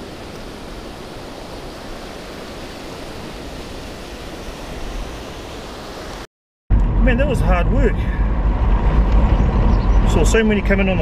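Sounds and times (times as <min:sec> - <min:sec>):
car road and engine rumble: 0:06.7 - 0:11.0.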